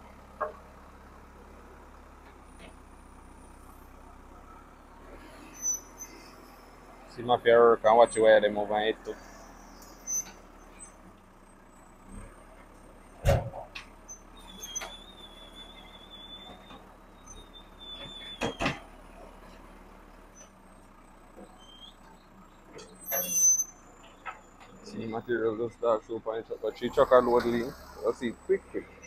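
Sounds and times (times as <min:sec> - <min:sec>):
backhoe engine running: 0:00.0 - 0:29.0.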